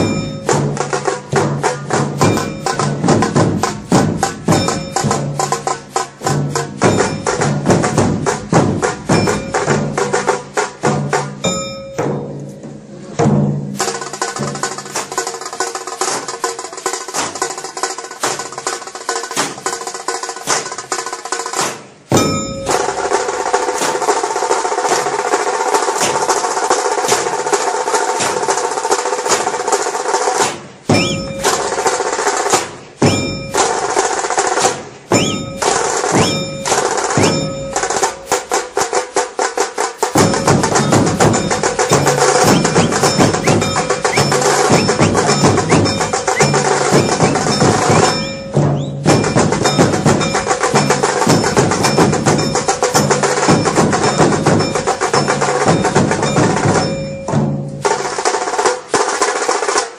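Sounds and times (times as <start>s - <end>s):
firecrackers crackling: 13.8s - 56.6s.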